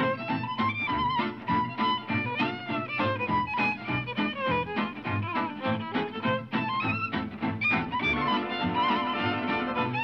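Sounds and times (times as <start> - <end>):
fiddle melody over a beat: 0.0 - 10.0.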